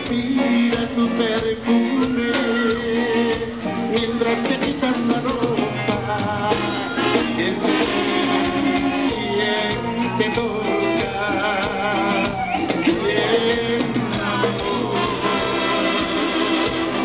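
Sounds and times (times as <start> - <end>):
brass band music: 0.0 - 17.0
man singing: 0.0 - 17.0
trumpets: 6.5 - 17.0.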